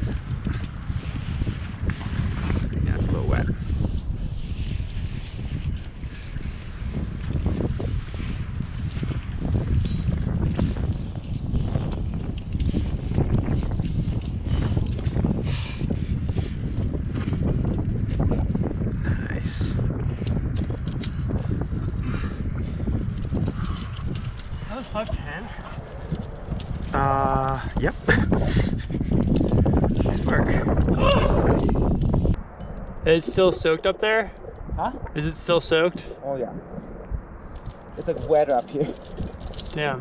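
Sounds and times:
constant low rumble: 0.0 - 40.0
metal climbing gear clinking: 20.2 - 21.6, 23.0 - 27.2, 37.5 - 40.0.

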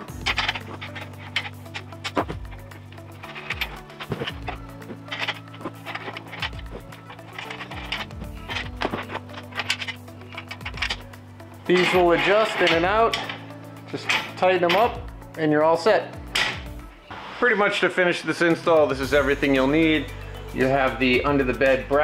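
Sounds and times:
music with held low chords: 0.0 - 22.0.

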